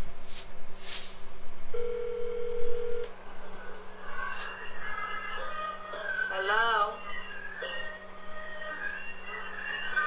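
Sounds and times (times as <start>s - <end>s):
telephone dial tone: 1.8s - 3.1s.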